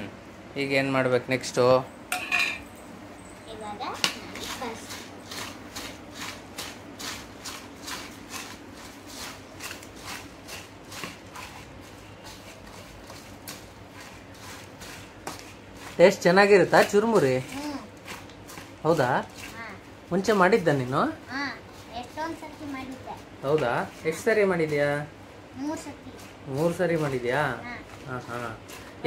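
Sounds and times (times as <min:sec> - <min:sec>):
puffed rice rustling in a bowl: 0:04.1 - 0:25.2, 0:26.1 - 0:29.0.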